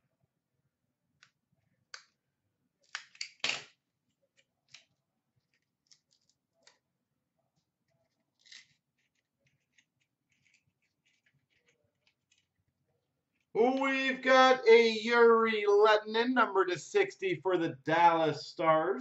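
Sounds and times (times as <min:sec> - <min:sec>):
cards clicking and rustling: 0:08.1 - 0:12.6.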